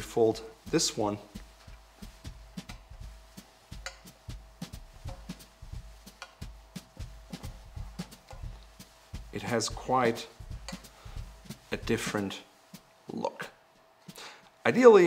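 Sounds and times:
faint steady hum: 0.0s - 14.9s
cloth rustling: 0.4s - 14.1s.

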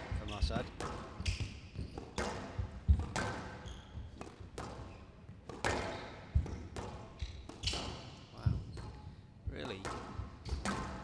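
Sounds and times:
court shoes squeaking: 0.0s - 11.0s
squash ball hitting rackets and walls: 0.0s - 11.0s.

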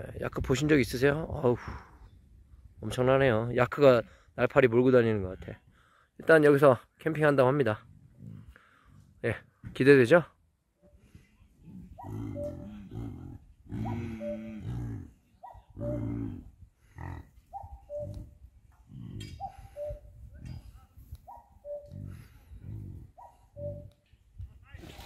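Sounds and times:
yaks grunting: 11.6s - 19.8s.

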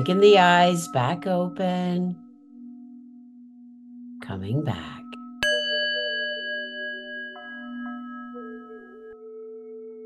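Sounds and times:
small metal bell ringing: 5.4s - 9.0s.

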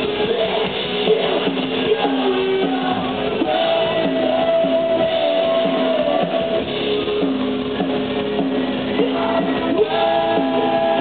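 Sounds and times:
live rock band playing: 0.0s - 11.0s
strummed electric guitars: 0.0s - 11.0s.

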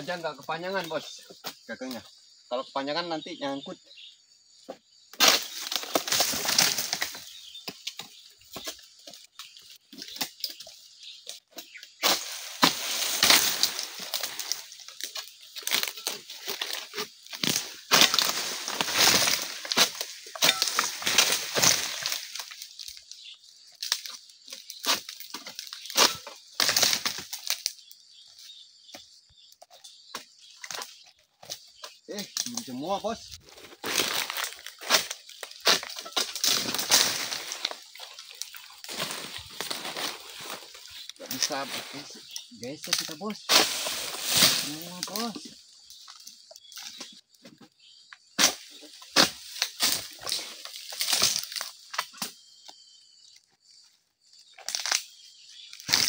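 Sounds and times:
palm fronds rustling and tearing: 5.2s - 27.9s, 30.5s - 47.2s, 48.4s - 52.4s, 54.4s - 56.0s.

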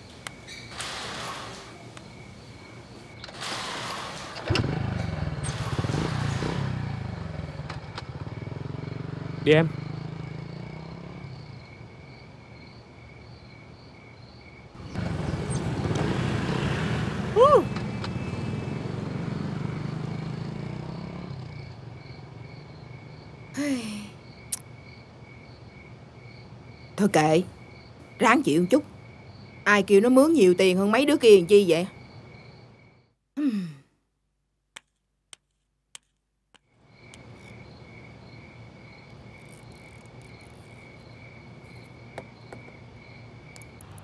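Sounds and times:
insects chirping: 0.0s - 33.6s, 36.0s - 44.0s
small motorbike engines: 3.2s - 11.9s, 14.8s - 23.8s, 37.1s - 41.9s.

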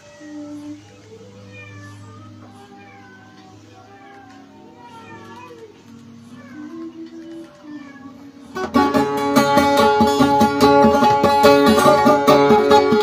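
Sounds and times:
high-pitched gliding cries: 0.0s - 8.6s
acoustic guitar: 5.8s - 13.0s.

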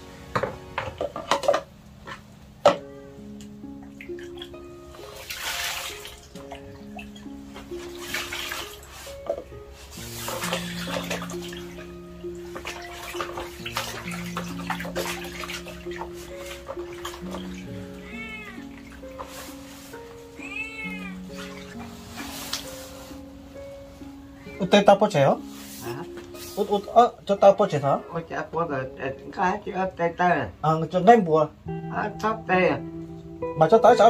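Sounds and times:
slow background music: 0.0s - 34.0s
water splashing in basin: 3.9s - 22.8s
meow-like calls: 18.0s - 18.8s, 20.3s - 21.7s, 24.4s - 24.8s.

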